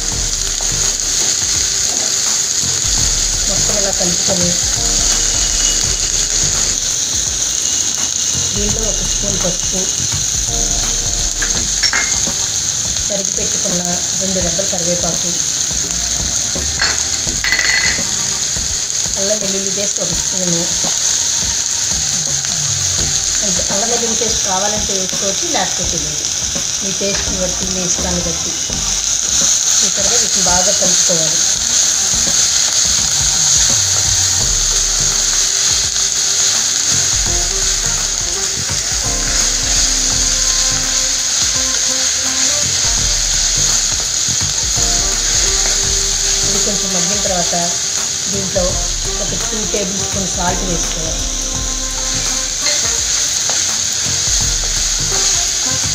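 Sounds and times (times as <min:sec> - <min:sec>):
vegetables sizzling in a pan: 0:00.0 - 0:55.9
pan scraping and clinking: 0:11.4 - 0:12.4, 0:16.8 - 0:18.3.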